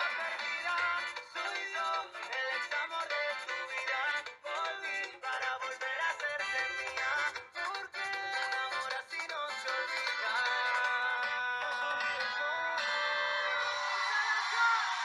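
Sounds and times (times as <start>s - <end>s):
latin pop song with vocals: 0.0s - 15.0s.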